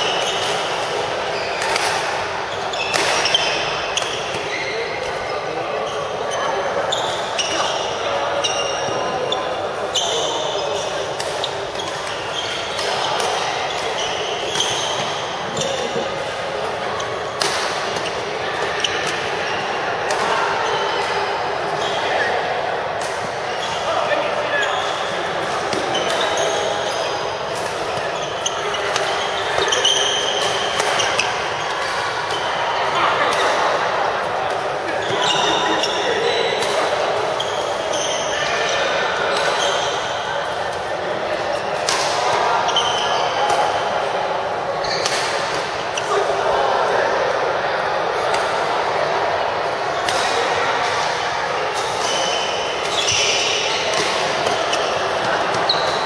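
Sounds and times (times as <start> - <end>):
murmur of voices echoing: 0.0 - 56.0.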